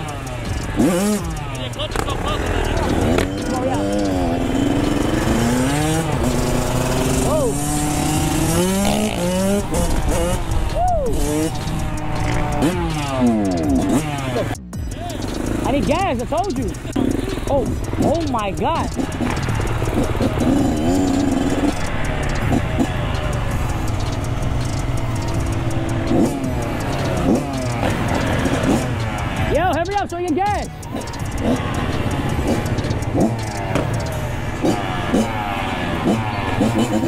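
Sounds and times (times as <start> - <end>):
dirt bike engines revving: 0.0 - 37.0.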